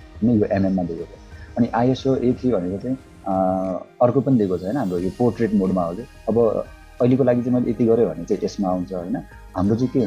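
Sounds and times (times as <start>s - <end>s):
faint background music: 0.0s - 10.0s
man speaking: 0.2s - 10.0s.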